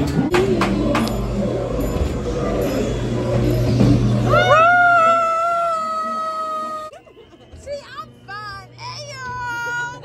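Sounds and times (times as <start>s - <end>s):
low hum: 0.0s - 8.8s
high-pitched scream: 4.2s - 7.0s.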